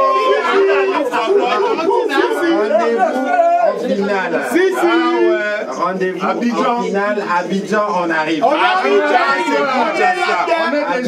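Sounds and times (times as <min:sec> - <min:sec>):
voices chanting and singing: 0:00.0 - 0:06.8.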